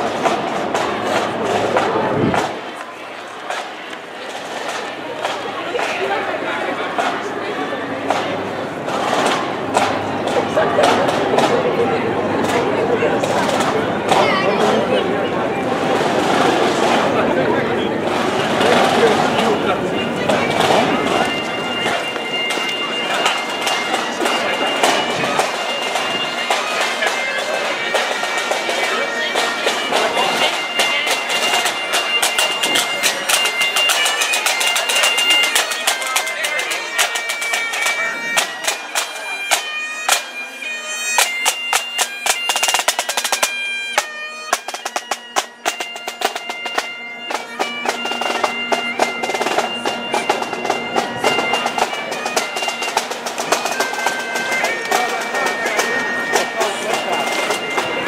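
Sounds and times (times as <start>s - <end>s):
bagpipes playing a march: 0.0s - 58.0s
snare drum strokes: 8.9s - 11.6s, 20.3s - 40.3s, 41.2s - 58.0s.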